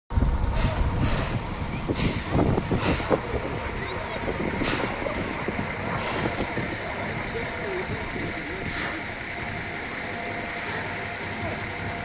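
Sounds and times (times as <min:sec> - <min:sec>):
steam locomotive wheels rumbling: 0:00.1 - 0:12.0
steam exhaust hiss: 0:00.4 - 0:06.7.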